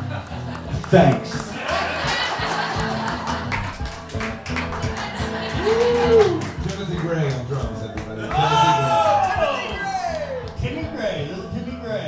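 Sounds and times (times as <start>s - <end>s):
drums: 0.0s - 11.4s
acoustic guitars strumming: 0.0s - 12.0s
bass notes: 0.0s - 12.0s.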